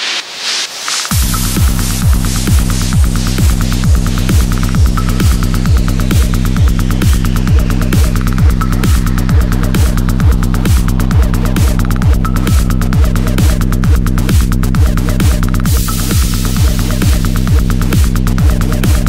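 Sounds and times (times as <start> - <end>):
hard techno track: 0.0 - 19.0
fast hi-hat ticks: 0.4 - 19.0
droning bass: 1.1 - 19.0
heavy kick drum: 1.1 - 19.0.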